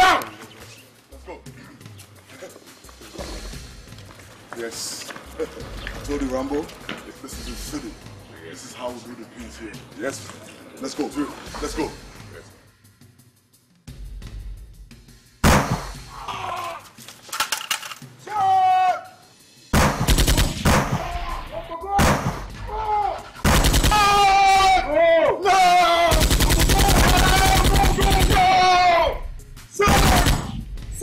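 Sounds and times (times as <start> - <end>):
automatic rifle gunfire: 19.8 - 21.1, 23.4 - 24.2, 26.1 - 28.6, 29.9 - 30.6.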